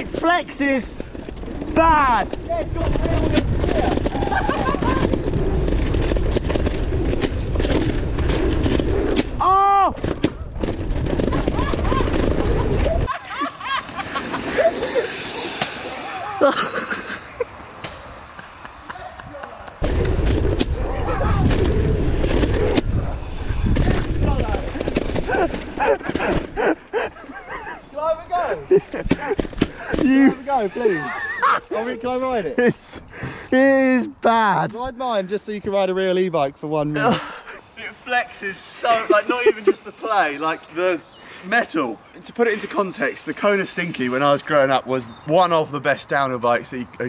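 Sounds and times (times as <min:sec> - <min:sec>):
mountain bike rumbling on dirt trail: 0:00.0 - 0:09.4, 0:10.1 - 0:17.0, 0:19.8 - 0:26.8
wind buffeting microphone: 0:00.8 - 0:09.4, 0:18.4 - 0:26.6.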